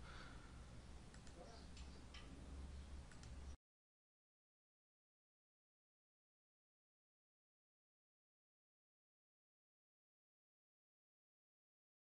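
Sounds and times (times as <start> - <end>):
faint low room hum: 0.0 - 3.6
faint clicks: 1.1 - 2.3, 3.1 - 3.4.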